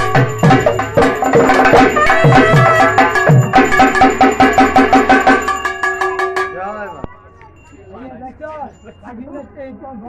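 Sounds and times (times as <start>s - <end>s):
folk drum and metal percussion: 0.0s - 10.0s.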